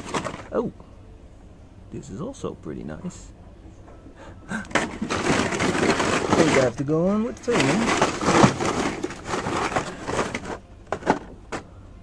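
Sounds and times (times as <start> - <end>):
plastic packaged toys clattering: 0.0 - 0.6, 4.7 - 11.6.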